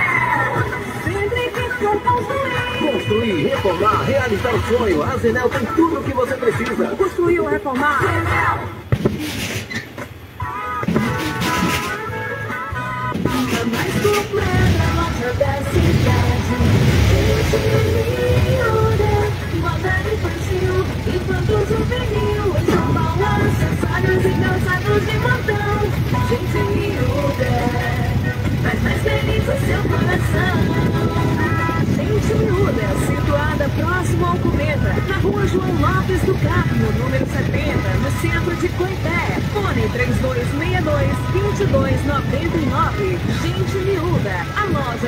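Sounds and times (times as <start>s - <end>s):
motorcycle engine running: 0.0s - 7.5s, 10.1s - 45.0s
music: 0.0s - 9.5s, 10.3s - 45.0s
indistinct voices: 13.2s - 45.0s.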